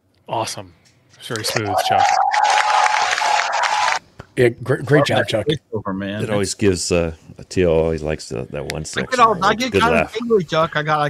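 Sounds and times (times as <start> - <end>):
recorded crowd cheering and applause: 1.4 - 4.0.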